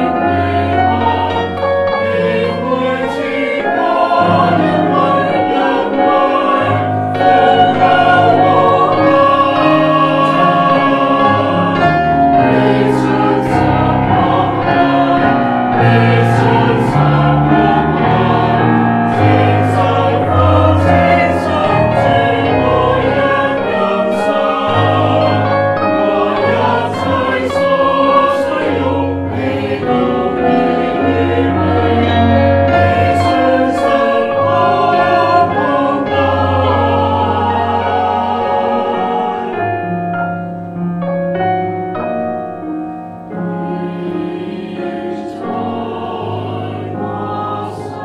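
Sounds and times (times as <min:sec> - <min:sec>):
mixed choir singing in harmony: 0:00.0 - 0:42.6, 0:43.2 - 0:48.0.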